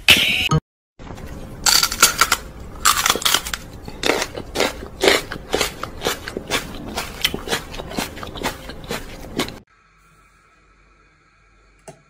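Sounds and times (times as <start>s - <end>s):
person crunching and chewing: 1.2s - 9.6s.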